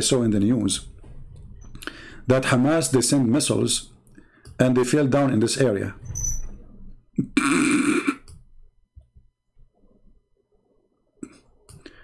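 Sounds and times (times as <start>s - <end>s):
man burping: 7.2s - 8.3s.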